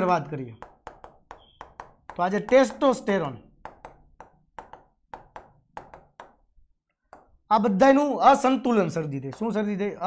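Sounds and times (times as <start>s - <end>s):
stylus tapping on writing board: 0.6s - 7.5s, 9.2s - 9.6s.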